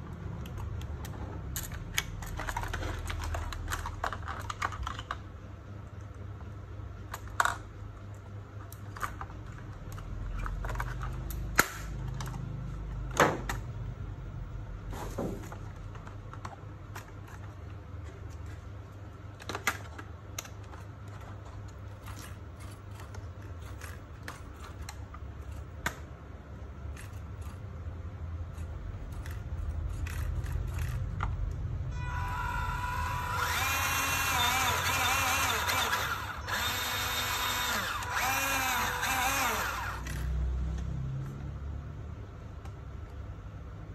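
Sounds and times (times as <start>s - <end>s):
low hum: 29.2s - 40.0s
electric motor and gears whining: 31.9s - 40.9s.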